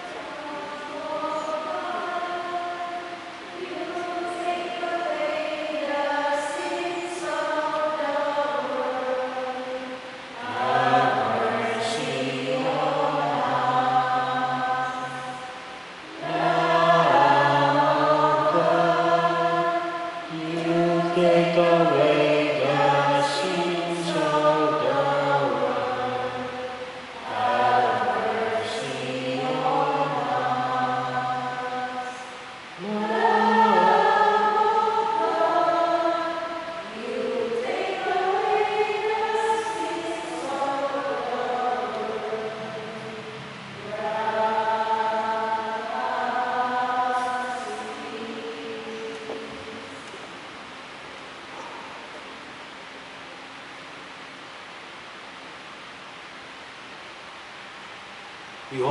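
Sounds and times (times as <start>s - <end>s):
church choir singing a hymn: 0.0s - 50.3s.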